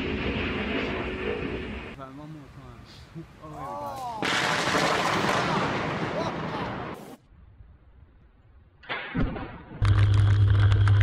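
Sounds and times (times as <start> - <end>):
thunderclap: 0.0 - 2.0, 4.2 - 7.2.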